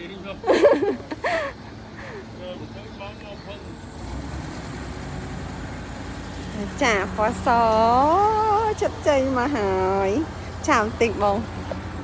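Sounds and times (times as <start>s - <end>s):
voices: 0.0s - 4.0s, 6.4s - 11.8s
engine rumble: 0.0s - 12.0s.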